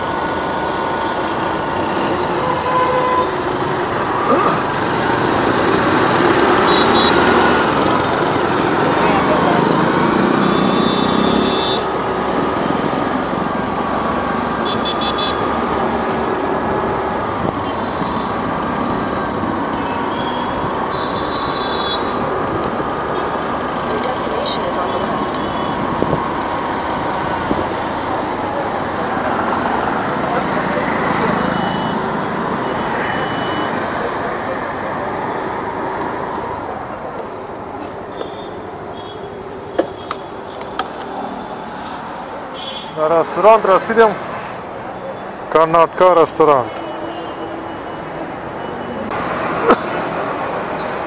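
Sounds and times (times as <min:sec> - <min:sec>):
road and traffic noise: 0:00.0 - 0:51.0.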